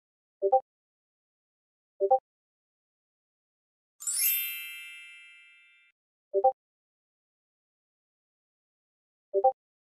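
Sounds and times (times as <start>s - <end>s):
bright success chime: 4.0s - 5.9s.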